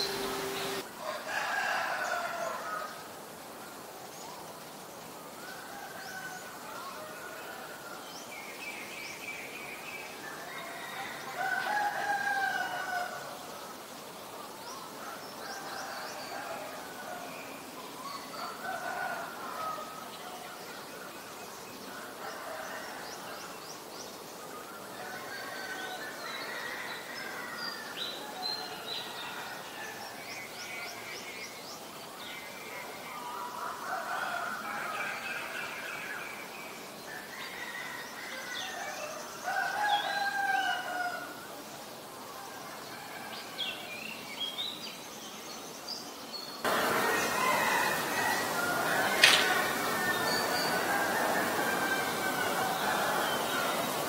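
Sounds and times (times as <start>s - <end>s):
steady hiss: 0.0s - 54.0s.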